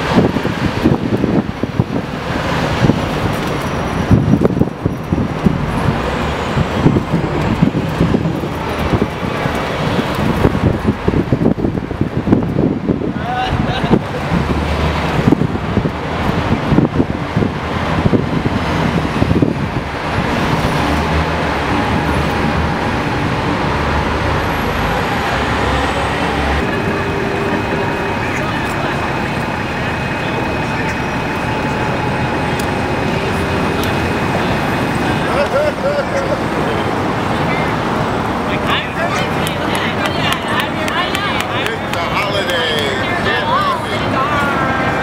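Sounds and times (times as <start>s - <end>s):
wind buffeting microphone: 0.0s - 42.2s
city street traffic noise: 0.0s - 45.0s.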